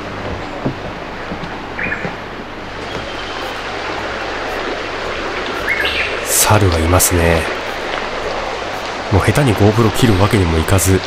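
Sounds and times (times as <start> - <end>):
rushing outdoor noise: 0.0 - 11.0.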